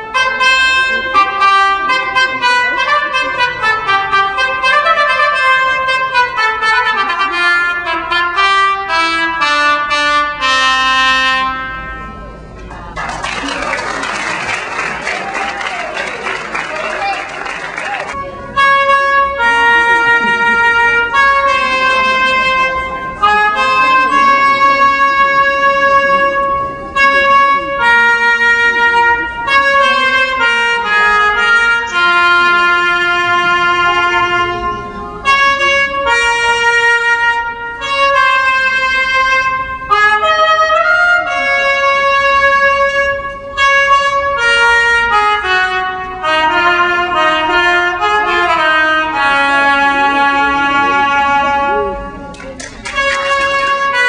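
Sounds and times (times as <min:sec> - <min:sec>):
trumpet melody: 0:00.0 - 0:12.6, 0:13.7 - 0:54.0.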